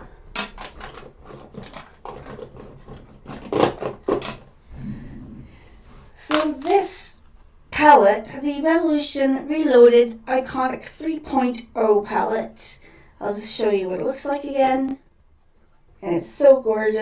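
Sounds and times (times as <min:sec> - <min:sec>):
makeup items clicking and knocking: 0:00.0 - 0:04.5, 0:06.3 - 0:06.8.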